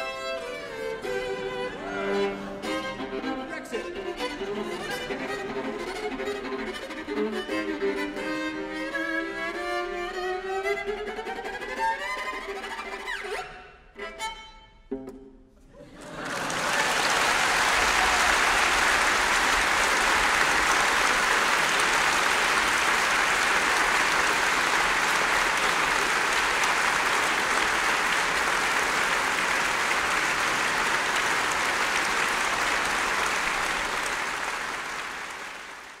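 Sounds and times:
large audience applauding: 15.8s - 36.0s.

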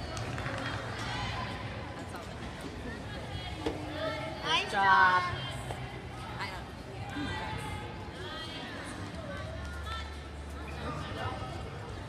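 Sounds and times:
crowd chatter echoing in a hall: 0.0s - 12.0s.

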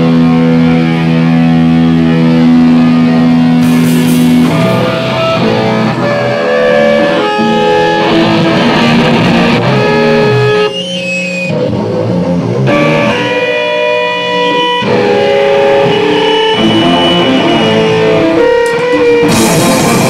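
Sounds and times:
electric guitar chords ringing: 0.0s - 20.0s
hardcore band with drums: 0.0s - 20.0s.

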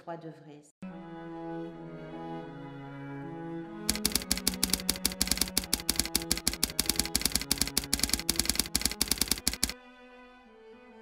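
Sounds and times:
slow bowed-string music: 0.8s - 3.8s
typewriter key clicks: 3.9s - 9.8s.

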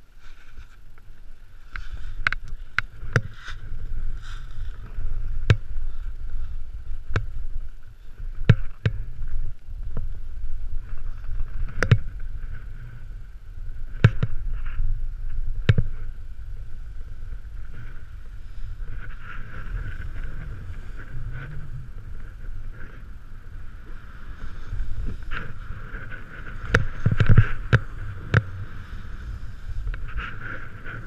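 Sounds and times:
wind rumble on microphone: 0.0s - 31.0s
snowboard hissing on snow: 2.9s - 8.3s, 14.4s - 31.0s.

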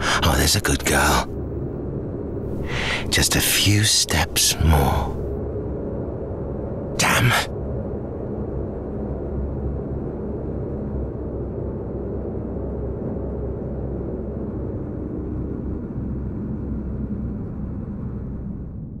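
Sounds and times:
steady low rumble: 0.0s - 19.0s.

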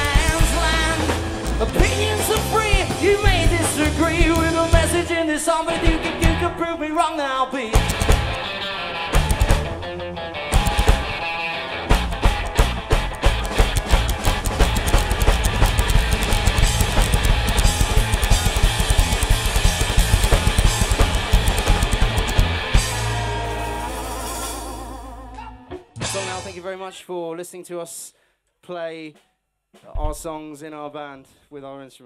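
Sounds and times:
fast busy drumming: 0.0s - 5.2s, 7.8s - 8.4s, 9.2s - 9.7s, 10.6s - 11.1s, 11.9s - 24.9s
upright double bass: 0.0s - 5.2s, 7.8s - 8.4s, 9.1s - 9.8s, 10.6s - 11.1s, 11.9s - 26.1s
electric guitar: 0.0s - 26.6s.

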